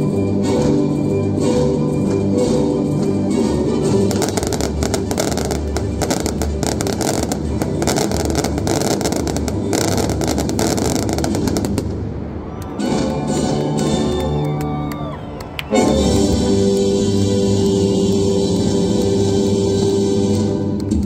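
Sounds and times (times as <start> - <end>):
fireworks cracks and bangs: 4.0 - 12.7.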